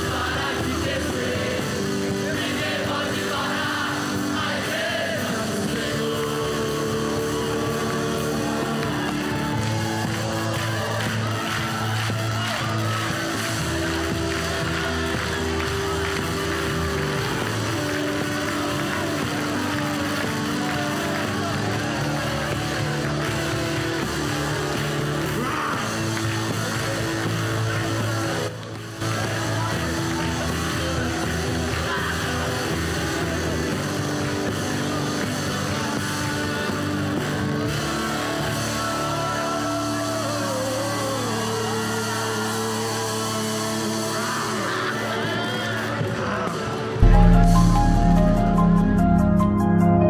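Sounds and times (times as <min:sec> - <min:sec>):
voices singing: 0:00.0 - 0:11.2
gospel band playing: 0:00.0 - 0:26.7, 0:46.8 - 0:50.0.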